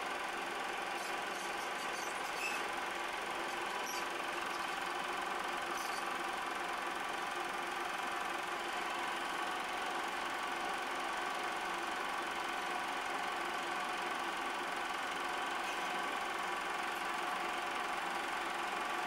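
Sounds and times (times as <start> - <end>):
film projector whirring: 0.0 - 19.0.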